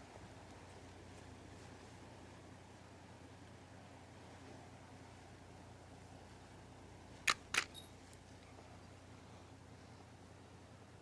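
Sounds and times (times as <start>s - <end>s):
sharp mechanical clicks: 7.2s - 7.8s.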